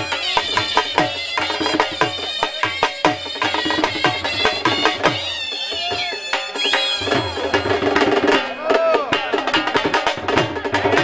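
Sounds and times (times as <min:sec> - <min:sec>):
dhol drums beating: 0:00.0 - 0:11.0.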